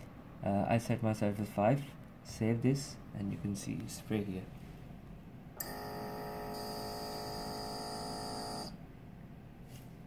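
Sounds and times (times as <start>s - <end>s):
small pump humming: 5.6s - 8.8s.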